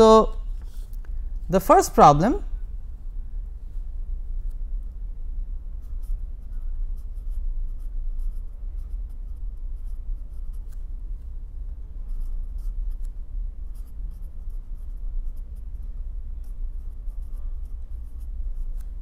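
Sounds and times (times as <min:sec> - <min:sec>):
steady low hum: 0:00.0 - 0:19.0
pen scratching on paper: 0:05.8 - 0:10.9, 0:12.0 - 0:19.0.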